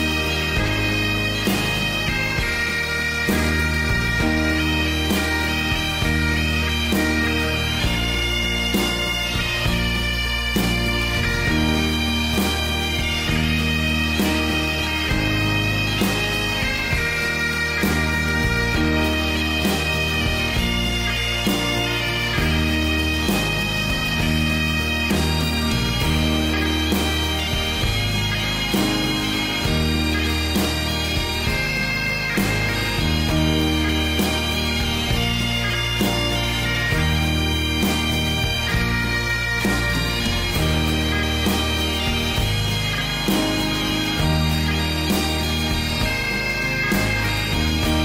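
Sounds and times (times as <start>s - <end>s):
bagpipes playing: 0.0s - 48.0s
bass line: 0.0s - 48.0s
drum strokes: 0.0s - 48.0s.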